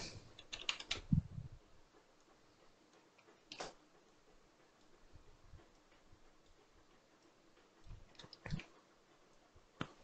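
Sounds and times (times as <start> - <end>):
keyboard and mouse clicks: 0.4 - 1.2, 3.2 - 3.8.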